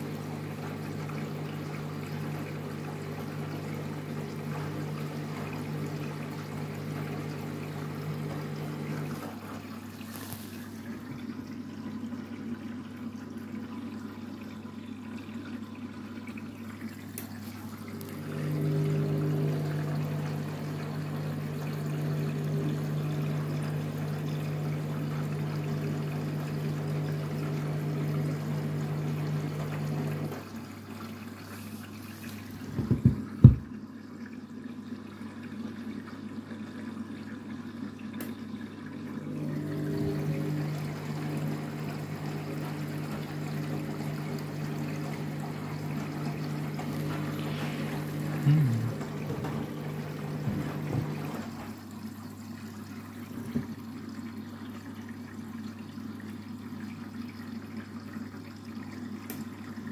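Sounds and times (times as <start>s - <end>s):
washing machine motor humming: 0.0s - 33.8s, 35.0s - 55.1s
water sloshing in washing machine: 0.0s - 59.9s.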